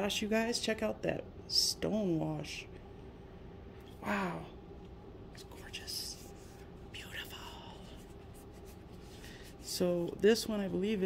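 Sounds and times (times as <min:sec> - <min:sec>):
cloth rubbing on knife blade: 0:07.8 - 0:10.0.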